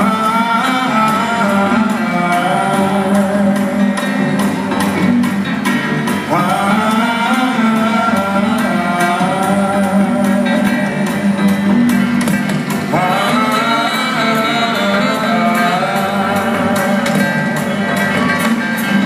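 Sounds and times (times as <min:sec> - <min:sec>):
drums: 0:00.0 - 0:19.0
live jazz band playing: 0:00.0 - 0:19.0
piano: 0:00.0 - 0:19.0
upright bass: 0:00.0 - 0:19.0.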